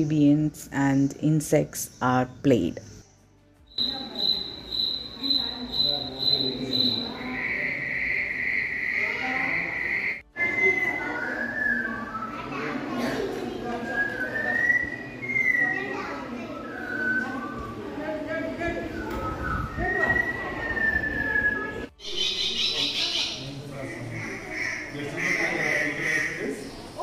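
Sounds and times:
faint voices murmuring: 3.0 - 27.0
insect trill over loudspeakers: 3.7 - 10.8.

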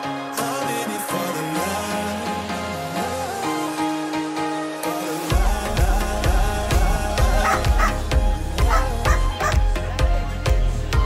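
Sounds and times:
pop music with heavy bass: 0.0 - 11.0.

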